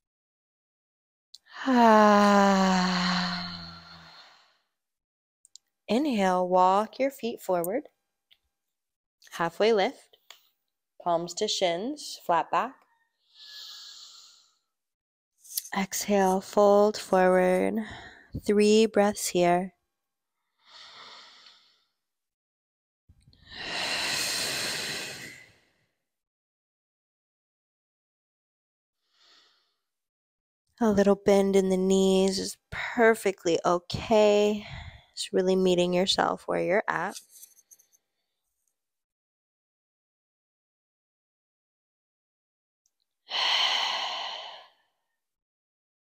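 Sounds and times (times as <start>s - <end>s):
person breathing out: 2.2s - 4.6s, 23.4s - 25.7s, 43.3s - 44.8s.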